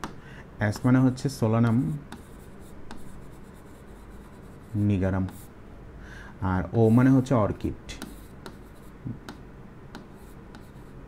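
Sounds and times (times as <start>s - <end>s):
man speaking: 0.6s - 2.1s, 4.8s - 5.4s, 6.4s - 8.1s
marker writing on a board: 0.8s - 5.5s, 7.9s - 11.0s.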